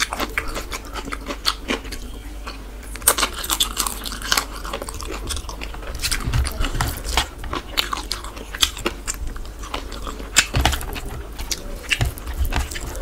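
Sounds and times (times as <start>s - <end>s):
man chewing food: 0.0s - 13.0s.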